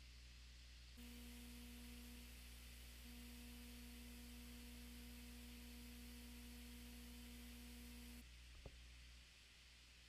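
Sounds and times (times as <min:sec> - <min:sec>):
faint electrical hum and hiss: 0:00.0 - 0:10.0.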